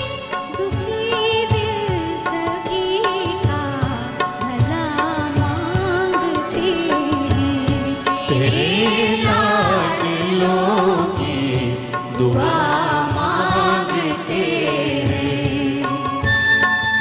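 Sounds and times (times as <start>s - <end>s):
woman singing with vibrato: 0.0s - 11.4s, 12.4s - 16.4s
orchestra with violins: 15.9s - 17.0s.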